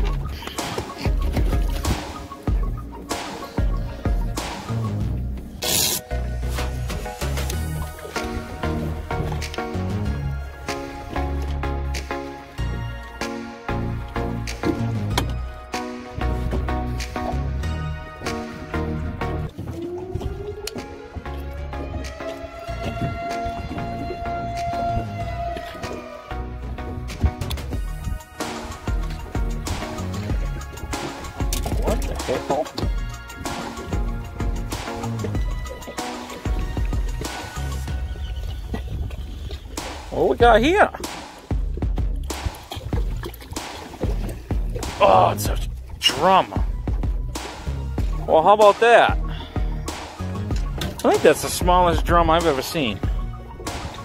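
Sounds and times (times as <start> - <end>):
background music with chords: 0.0 - 54.0.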